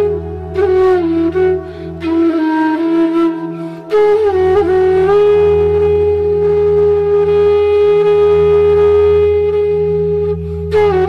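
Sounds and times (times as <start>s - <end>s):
flute holding long note: 0.0s - 11.0s.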